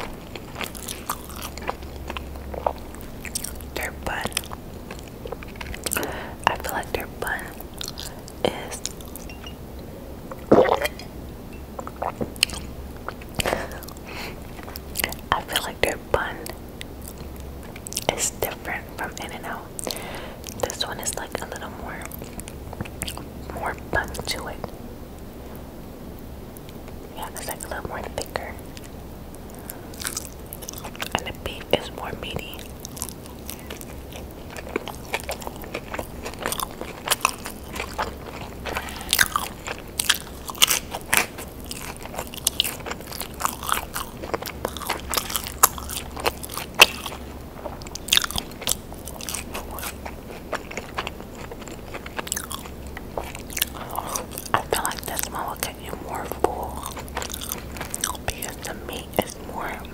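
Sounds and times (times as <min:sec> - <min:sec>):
close chewing and crunching: 0:00.0 - 0:09.6, 0:10.3 - 0:24.8, 0:26.6 - 0:59.9
wet mouth clicks: 0:10.3 - 0:11.1.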